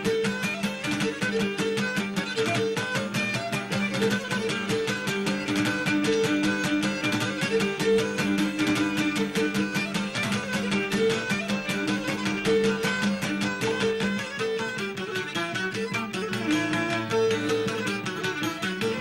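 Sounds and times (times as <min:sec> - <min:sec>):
bowed string melody: 0:00.0 - 0:19.0
lute strumming fast rhythm: 0:00.0 - 0:19.0.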